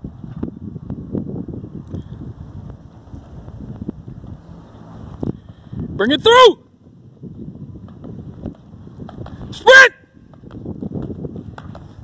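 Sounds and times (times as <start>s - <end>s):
wind buffeting microphone: 0.0s - 12.0s
footfalls on rubber track: 7.7s - 12.0s.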